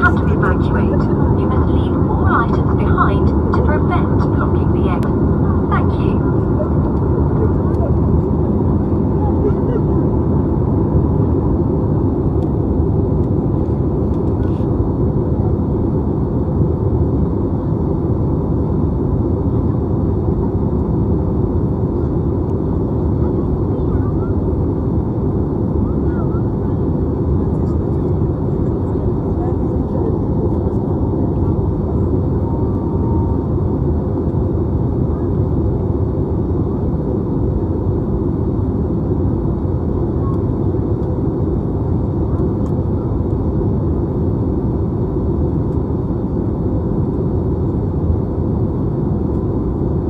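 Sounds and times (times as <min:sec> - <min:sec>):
airliner cabin drone: 0:00.0 - 0:50.0.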